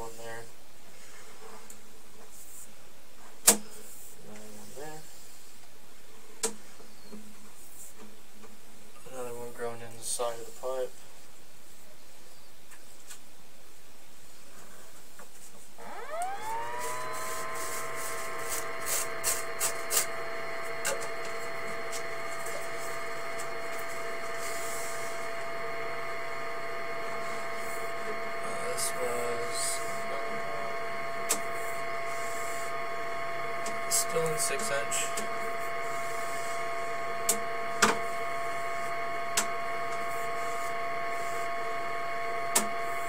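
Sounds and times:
motor whining up to speed: 0:15.8 - 0:43.0.

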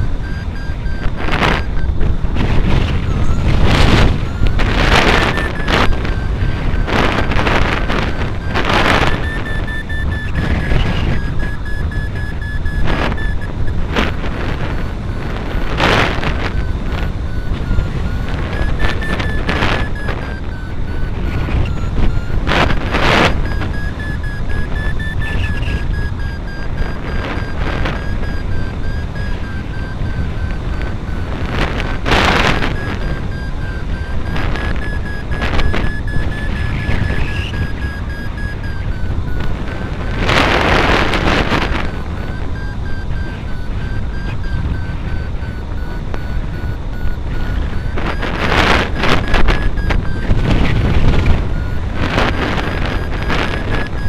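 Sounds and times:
wind rushing over microphone: 0:00.0 - 0:54.0
thin steady high tone: 0:03.0 - 0:13.8, 0:15.6 - 0:31.3.

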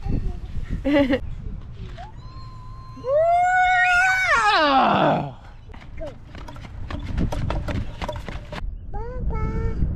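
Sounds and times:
man squealing: 0:02.2 - 0:05.4.

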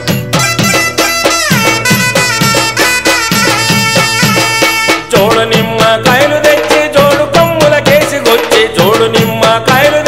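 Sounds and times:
held sliding melody line: 0:00.0 - 0:05.1
fast steady drum beat: 0:00.0 - 0:10.0.

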